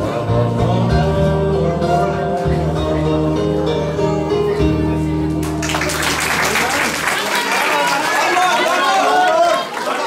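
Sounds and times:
audience clapping: 0:05.4 - 0:10.0.

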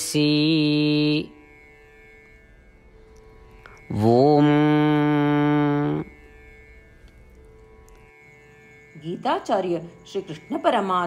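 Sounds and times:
voice chanting om: 0:00.0 - 0:01.5, 0:03.5 - 0:06.4
soft musical drone: 0:00.0 - 0:11.0.

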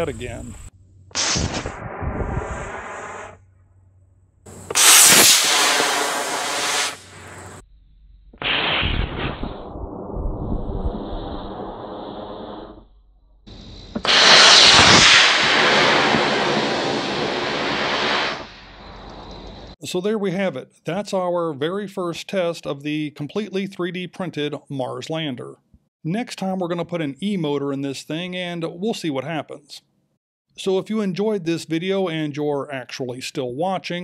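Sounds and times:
model rocket motor hissing: 0:04.5 - 0:07.6, 0:13.9 - 0:18.5.

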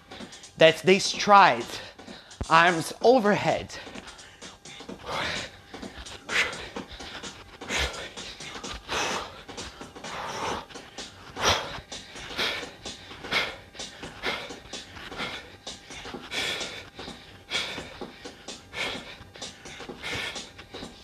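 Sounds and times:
man breathing hard: 0:00.0 - 0:00.6, 0:01.6 - 0:02.5, 0:03.6 - 0:21.0.

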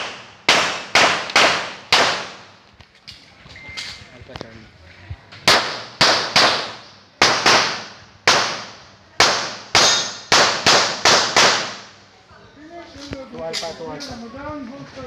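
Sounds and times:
pistol shots with echo: 0:00.0 - 0:02.5, 0:05.5 - 0:11.9.

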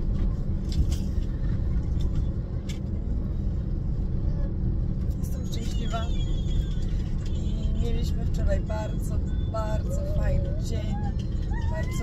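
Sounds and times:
car road and engine rumble: 0:00.0 - 0:12.0.

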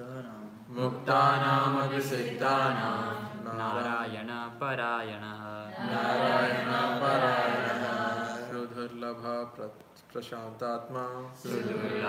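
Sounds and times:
person chanting verse: 0:00.0 - 0:09.7.

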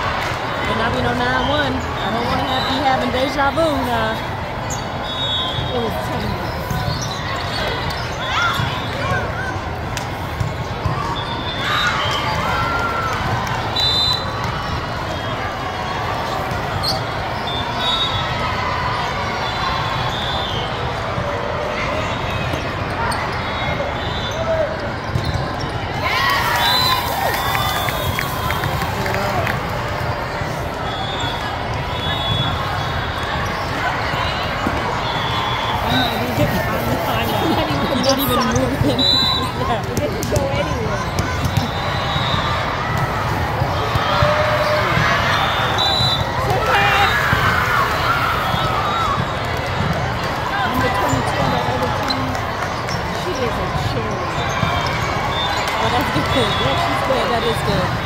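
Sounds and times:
babble of many voices: 0:00.0 - 0:58.0.

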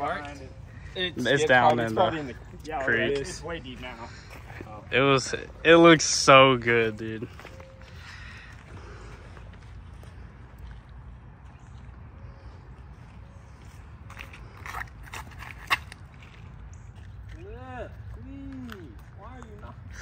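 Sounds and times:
light footsteps: 0:00.0 - 0:05.6, 0:06.2 - 0:20.0
low outdoor rumble: 0:00.0 - 0:20.0.

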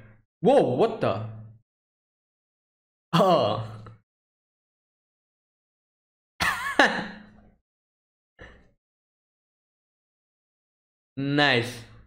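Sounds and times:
man laughing: 0:06.4 - 0:07.3.

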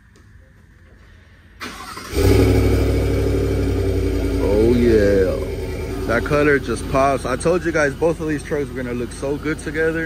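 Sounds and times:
engine cranking: 0:01.6 - 0:03.0
truck engine idling: 0:01.6 - 0:10.0.

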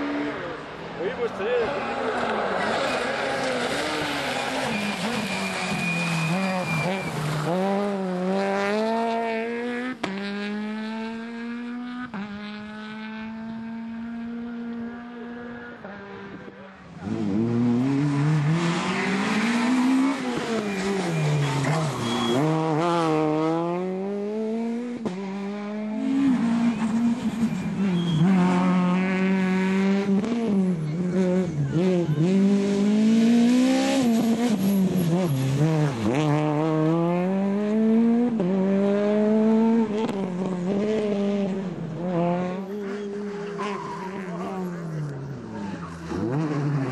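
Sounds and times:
rally car engine revving: 0:00.0 - 0:46.9
tyre noise on wet road: 0:01.7 - 0:09.0, 0:17.0 - 0:23.2.

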